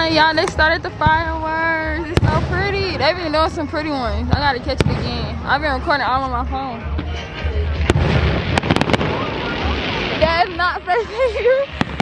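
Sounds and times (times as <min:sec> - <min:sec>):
fireworks cracking: 0:00.0 - 0:06.1, 0:07.8 - 0:12.0
crackling hiss of fireworks: 0:07.8 - 0:12.0.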